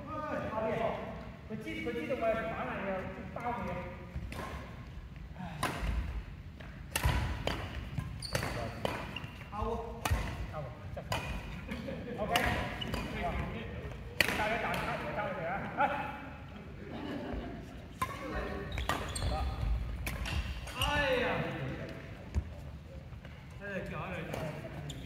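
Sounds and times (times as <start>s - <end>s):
rackets hitting shuttlecock: 3.6s - 4.9s, 5.6s - 15.1s, 18.0s - 21.0s.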